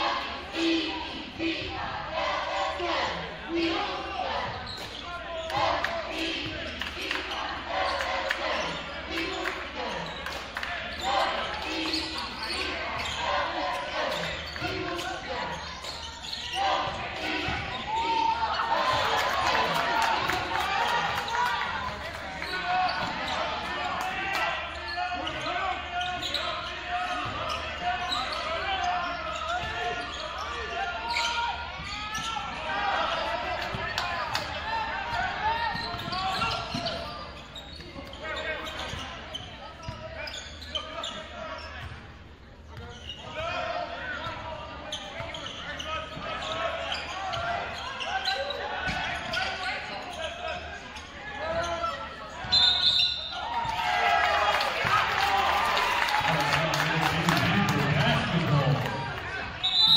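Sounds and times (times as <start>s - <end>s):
crowd voices: 0.0s - 59.9s.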